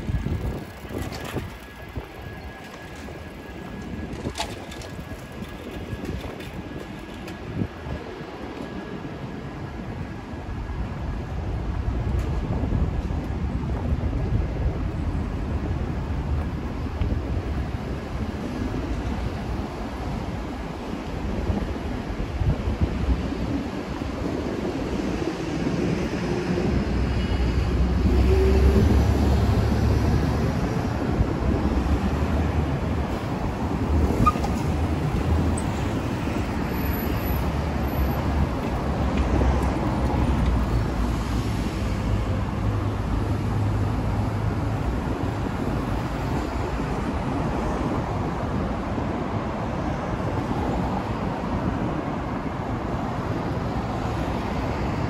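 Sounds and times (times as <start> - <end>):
traffic rumble: 0.0 - 55.0.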